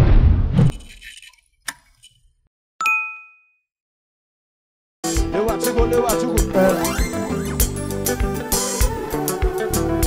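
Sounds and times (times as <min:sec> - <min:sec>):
bright ding: 0:02.8 - 0:03.6.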